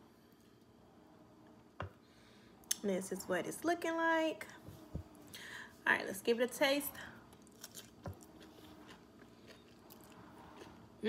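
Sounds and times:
crunching and chewing: 0:07.3 - 0:11.0.

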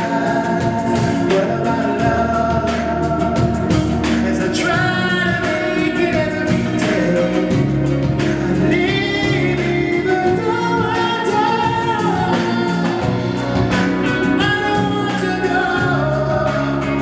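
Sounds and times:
live band music: 0:00.0 - 0:17.0
man singing long notes: 0:00.0 - 0:17.0.

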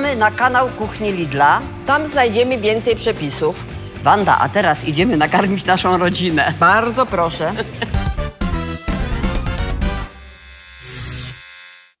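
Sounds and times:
neon sign electrical buzz: 0:09.9 - 0:12.0.

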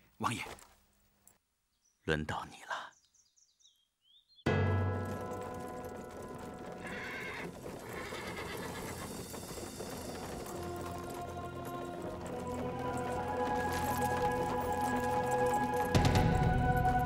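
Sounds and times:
horse hoofbeats: 0:04.5 - 0:17.0
horse whinnying: 0:06.8 - 0:09.5
dramatic soundtrack music: 0:09.2 - 0:17.0.

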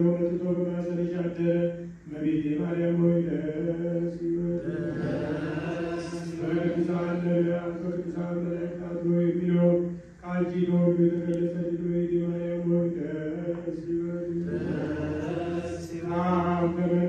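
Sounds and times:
man chanting: 0:00.0 - 0:17.0.

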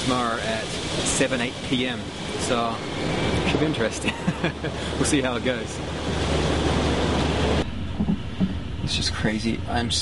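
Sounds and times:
loud hiss of noise: 0:00.0 - 0:03.9
train rumbling along track: 0:00.0 - 0:05.9, 0:06.8 - 0:10.0.

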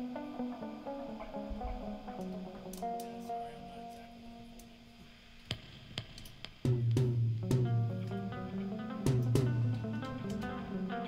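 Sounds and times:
drum kit clicks: 0:01.2 - 0:03.3, 0:05.4 - 0:10.9.

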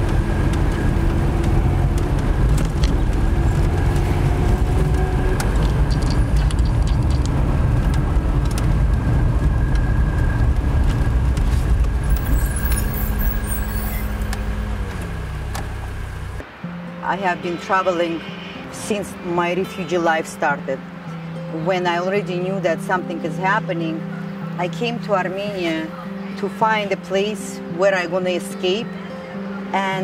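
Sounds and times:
engine and road rumble: 0:00.0 - 0:27.7
small clicks and rattles: 0:05.4 - 0:08.7.

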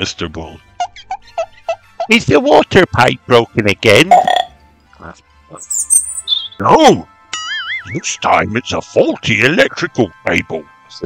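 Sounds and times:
faint background music: 0:00.0 - 0:11.0
high squeaky sound: 0:05.6 - 0:06.6.

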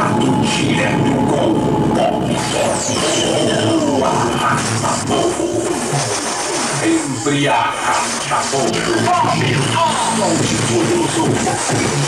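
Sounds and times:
electronic music with processed voices: 0:00.0 - 0:12.0.

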